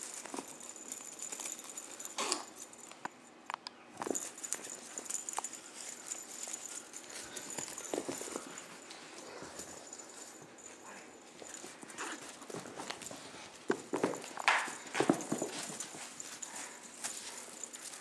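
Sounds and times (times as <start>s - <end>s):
kittens scampering on carpet: 0.0s - 2.7s, 4.0s - 18.0s.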